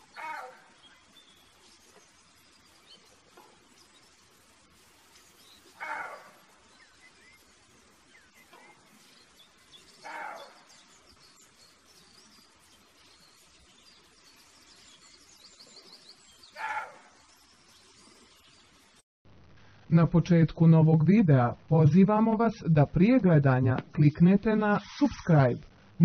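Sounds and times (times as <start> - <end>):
deer calling: 0.0 - 0.9, 5.6 - 6.7, 10.0 - 10.7, 16.6 - 17.0
faint birdsong: 0.0 - 19.0.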